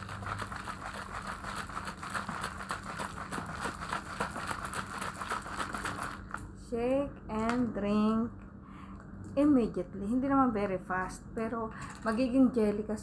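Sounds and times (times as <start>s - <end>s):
liquid sloshing in plastic bottle: 0.0s - 6.5s.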